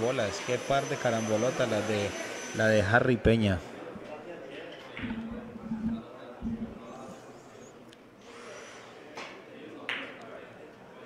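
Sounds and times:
billiard balls clicking: 0:05.0 - 0:06.8.

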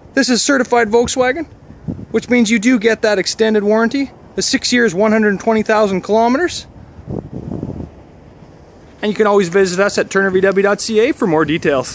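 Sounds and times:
wind rumbling on microphone: 0:00.0 - 0:11.9.

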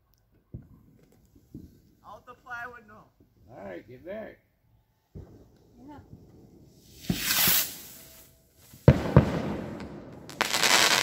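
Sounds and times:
firework bangs: 0:05.1 - 0:11.0
firework crackling hiss: 0:06.6 - 0:11.0
firework rising hiss: 0:06.6 - 0:11.0.

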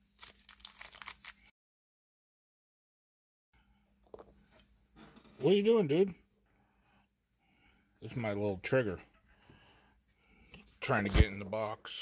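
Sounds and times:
foil wrapper crinkling: 0:00.0 - 0:01.5.

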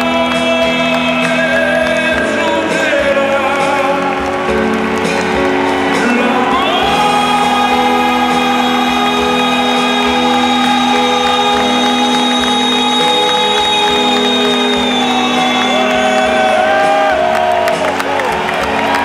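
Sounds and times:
crowd cheering: 0:00.0 - 0:19.0
live rock band: 0:00.0 - 0:19.0
singer holding long note: 0:05.6 - 0:19.0.

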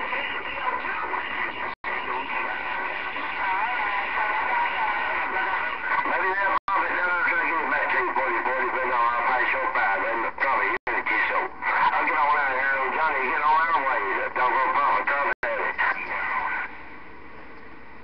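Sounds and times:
garbled voices over radio: 0:00.0 - 0:16.8
radio static: 0:00.0 - 0:16.8.

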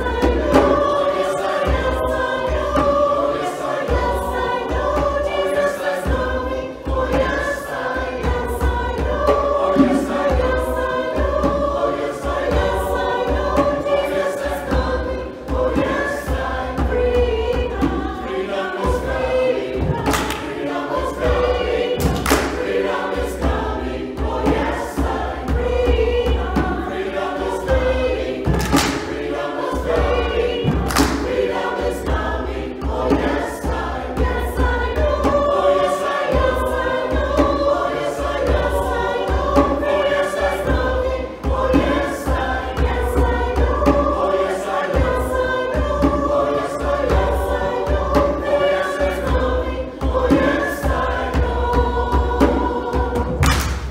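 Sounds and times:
choir singing in harmony: 0:00.0 - 0:53.9
sharp knocks: 0:19.8 - 0:20.5, 0:22.0 - 0:22.8, 0:28.5 - 0:29.3, 0:30.6 - 0:31.5, 0:53.3 - 0:53.9.

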